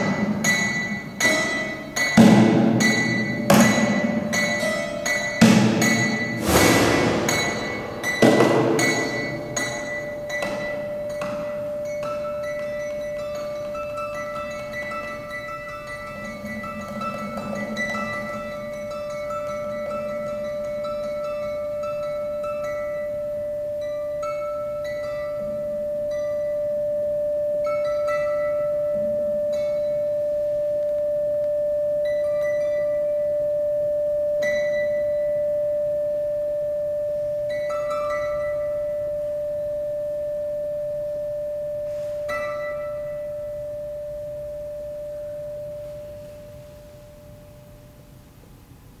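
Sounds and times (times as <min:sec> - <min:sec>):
plucked string notes: 0:00.0 - 0:26.6
steady pure held tone: 0:00.0 - 0:49.0.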